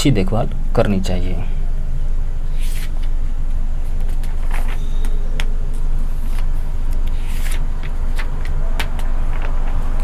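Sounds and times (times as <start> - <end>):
steady low rumble: 0.2 - 10.0
pages turning: 3.9 - 10.0.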